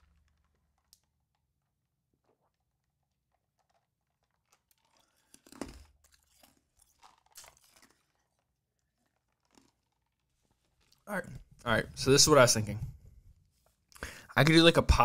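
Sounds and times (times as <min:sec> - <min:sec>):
person drinking and swallowing: 0:02.1 - 0:11.6.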